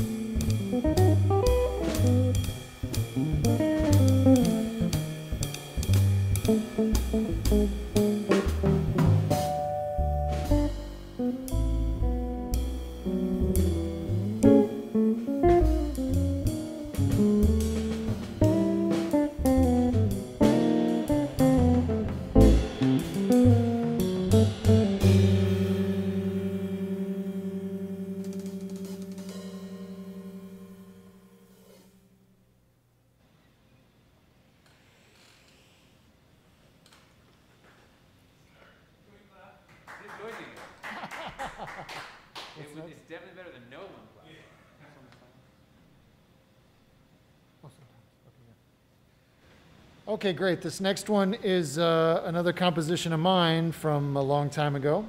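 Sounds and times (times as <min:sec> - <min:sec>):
upright double bass: 0:00.0 - 0:31.5
drum kit: 0:00.0 - 0:32.0
electric guitar: 0:06.5 - 0:31.5.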